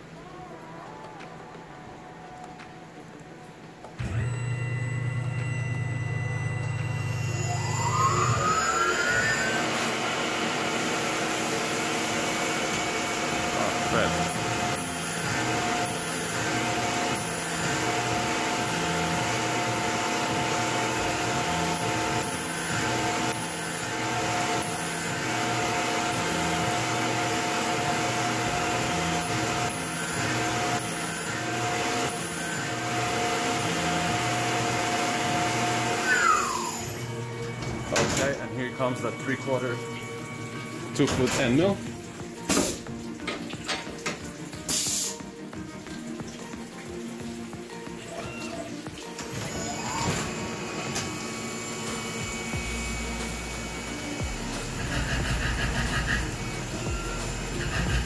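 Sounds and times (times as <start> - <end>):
drill drilling holes: 4.0 - 38.9, 49.1 - 58.0
mill spindle whining: 4.0 - 43.9, 47.0 - 58.0
coolant hissing: 6.9 - 58.0.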